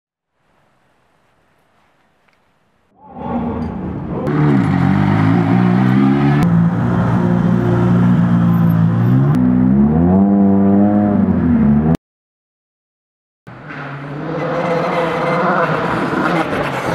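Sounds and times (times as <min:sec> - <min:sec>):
car engines revving: 0:03.2 - 0:12.0, 0:13.5 - 0:16.9.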